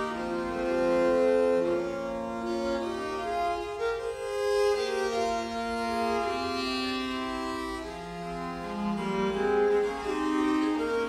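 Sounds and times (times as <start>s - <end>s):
viols playing polyphonic music: 0.0s - 11.0s.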